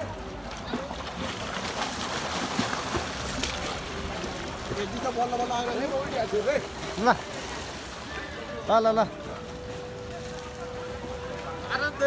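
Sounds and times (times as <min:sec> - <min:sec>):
pool water splashing: 0:00.0 - 0:12.0.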